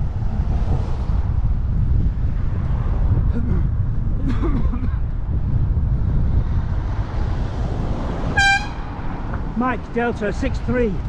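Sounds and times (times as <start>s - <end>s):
wind and road noise: 0.0s - 11.0s
high-pitched horn toot: 8.4s - 8.9s.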